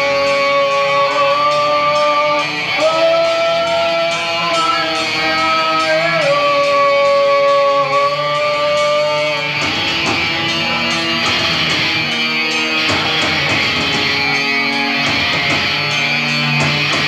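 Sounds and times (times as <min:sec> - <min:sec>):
metal band playing: 0:00.0 - 0:17.0.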